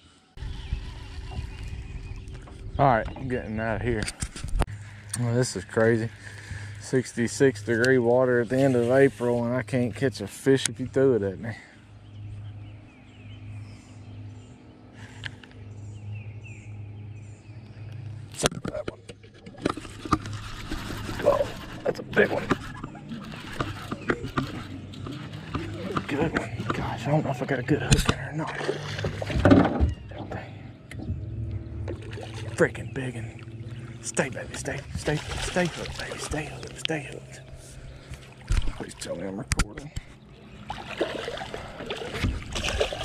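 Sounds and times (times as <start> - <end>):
small birds chirping: 0.3 - 4.0, 4.7 - 19.3, 22.6 - 42.2
wind buffeting microphone: 0.4 - 4.7.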